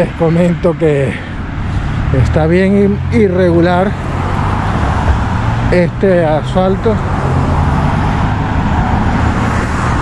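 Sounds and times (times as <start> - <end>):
cars driving past: 0.0 - 10.0.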